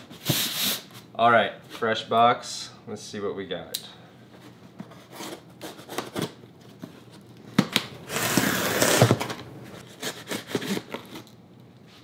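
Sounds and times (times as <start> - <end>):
knife scraping packing tape: 8.1 - 9.2, 9.8 - 11.3.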